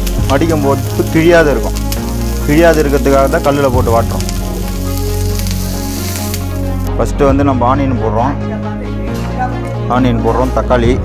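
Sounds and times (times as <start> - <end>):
leaf sizzling on hot griddle: 0.0 - 6.9.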